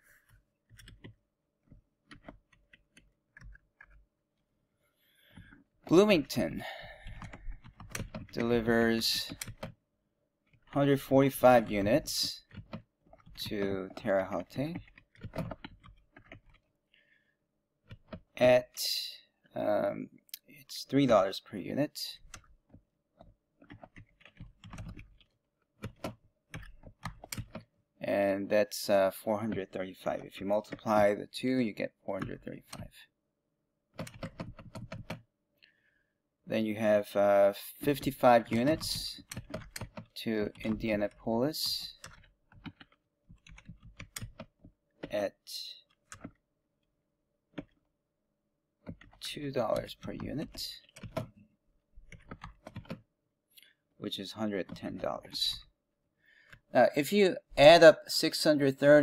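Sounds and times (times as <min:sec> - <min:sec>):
computer keyboard typing: 0:00.7 - 0:04.0, 0:06.9 - 0:09.8, 0:10.5 - 0:16.8, 0:17.8 - 0:18.4, 0:22.2 - 0:27.7, 0:29.4 - 0:31.2, 0:34.0 - 0:35.2, 0:37.8 - 0:45.2, 0:45.9 - 0:46.4, 0:47.5 - 0:47.8, 0:48.8 - 0:51.4, 0:52.0 - 0:53.1, 0:54.6 - 0:55.7.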